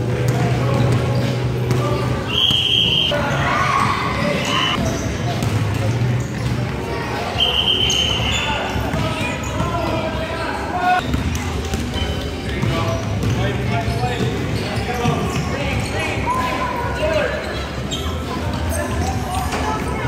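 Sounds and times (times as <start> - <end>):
basketballs bouncing on hardwood: 0.0 - 2.2, 5.3 - 6.6
children shouting and chattering: 0.0 - 12.5, 14.3 - 20.0.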